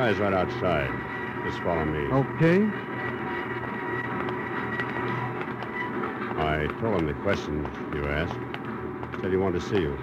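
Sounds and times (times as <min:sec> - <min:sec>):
factory machinery din: 0:00.0 - 0:10.0
faint hum: 0:00.0 - 0:10.0.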